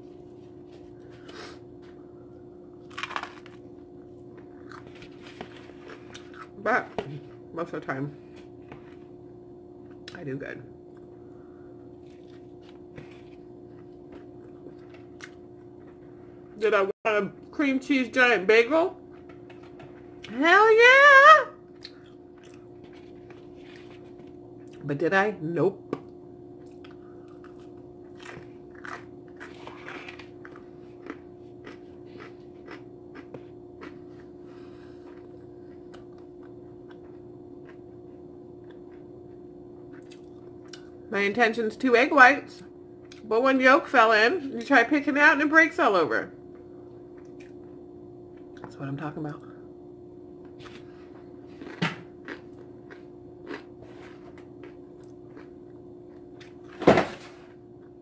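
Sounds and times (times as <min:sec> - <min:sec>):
steady low hum: 0:00.0 - 0:58.0
person chewing food: 0:02.8 - 0:06.6, 0:11.8 - 0:16.1, 0:21.7 - 0:24.8, 0:26.6 - 0:41.0, 0:50.4 - 0:56.7.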